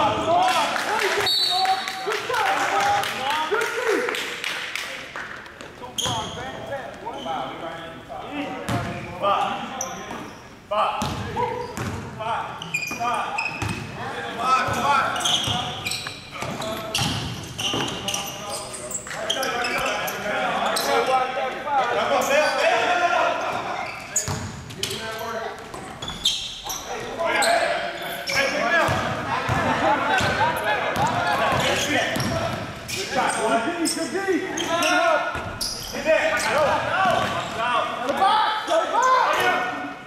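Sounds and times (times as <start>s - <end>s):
indistinct voices in gym: 0.0s - 40.0s.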